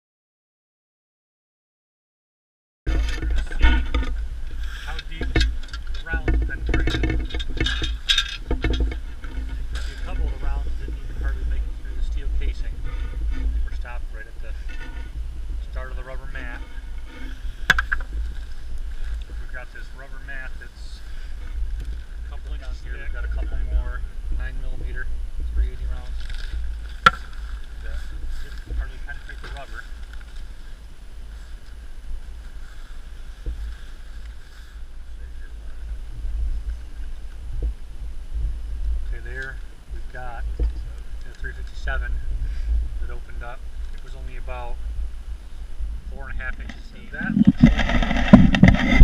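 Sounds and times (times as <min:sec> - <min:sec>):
drum being handled: 0:02.9 - 0:13.8, 0:14.4 - 0:19.6, 0:26.0 - 0:30.5, 0:46.4 - 0:49.0
small crackles: 0:02.9 - 0:49.0
wind buffeting microphone: 0:02.9 - 0:49.0.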